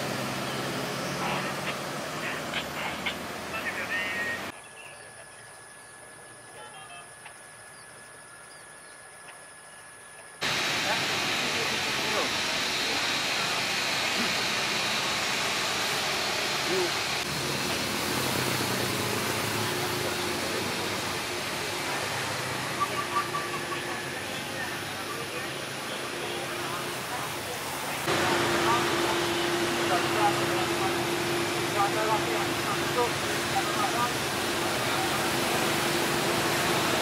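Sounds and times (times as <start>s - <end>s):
jet engine rushing: 0.0s - 4.5s, 10.4s - 37.0s.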